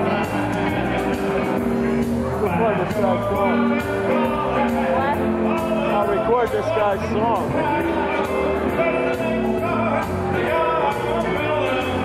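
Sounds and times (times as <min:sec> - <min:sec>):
electric guitar and keyboard: 0:00.0 - 0:12.0
man's voice: 0:00.0 - 0:12.0.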